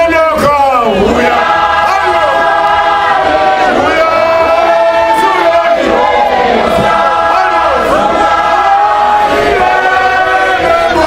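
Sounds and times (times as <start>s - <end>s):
men singing a hymn in harmony: 1.0s - 11.0s.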